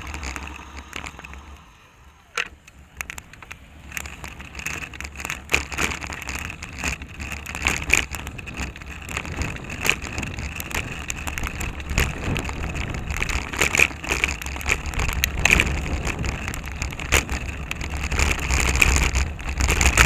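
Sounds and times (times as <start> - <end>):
bike rattles and knocks: 0.0 - 1.7, 2.3 - 20.0
low rumble of tyres on asphalt: 0.0 - 20.0.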